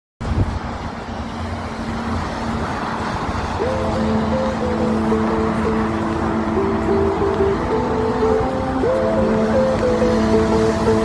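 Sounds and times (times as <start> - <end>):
cars passing on wet road: 0.2 - 11.0.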